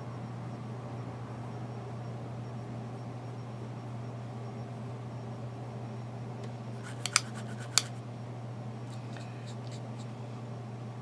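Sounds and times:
steady low hum: 0:00.0 - 0:11.0
makeup brush clicks and taps: 0:06.8 - 0:07.9.

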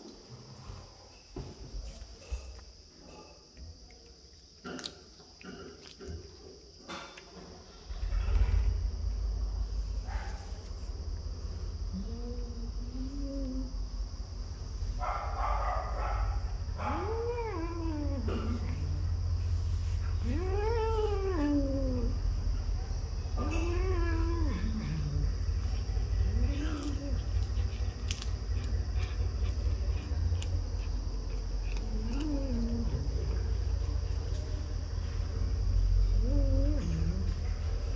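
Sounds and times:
steady low hum: 0:00.0 - 0:37.9.

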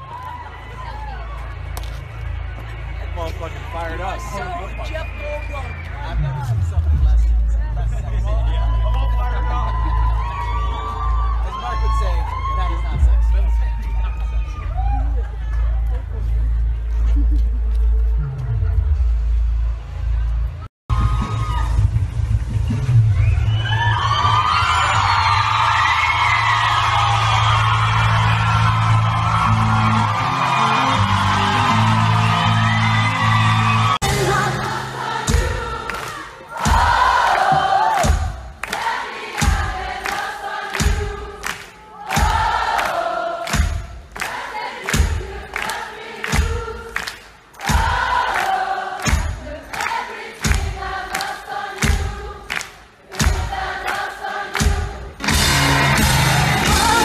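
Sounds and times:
crowd whooping: 0:00.0 - 0:06.8, 0:08.3 - 0:16.0, 0:20.9 - 0:34.4, 0:55.2 - 0:57.0
crowd singing together: 0:34.0 - 0:57.0
live rock band playing: 0:55.2 - 0:57.0.

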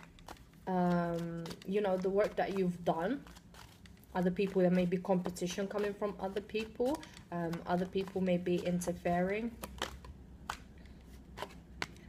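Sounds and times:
cards clicking on table: 0:00.0 - 0:12.0.

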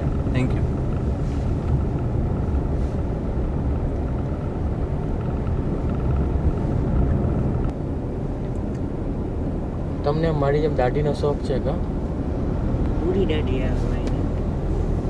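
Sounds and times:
car engine rumble: 0:00.0 - 0:15.0
road noise: 0:00.0 - 0:15.0.

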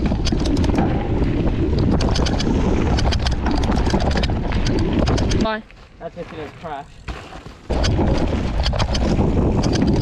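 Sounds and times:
bike rattling clicks: 0:00.0 - 0:05.5, 0:07.7 - 0:10.0
wind on microphone: 0:00.0 - 0:05.6, 0:07.7 - 0:10.0
tyres on loose dirt: 0:00.0 - 0:10.0.

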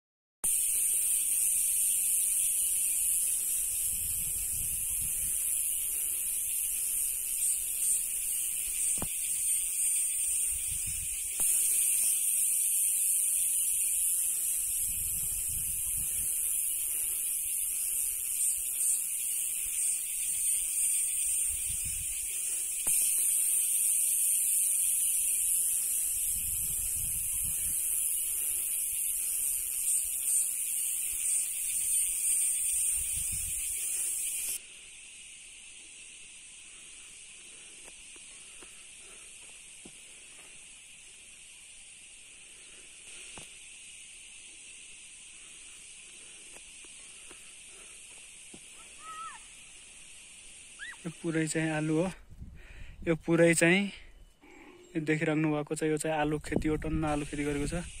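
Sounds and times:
insects buzzing: 0:00.4 - 0:58.0
wind rumble on microphone: 0:03.7 - 0:05.5, 0:10.5 - 0:11.3, 0:14.7 - 0:16.4, 0:21.4 - 0:22.2, 0:26.2 - 0:27.9, 0:32.9 - 0:33.7, 0:52.2 - 0:53.1, 0:56.4 - 0:58.0.

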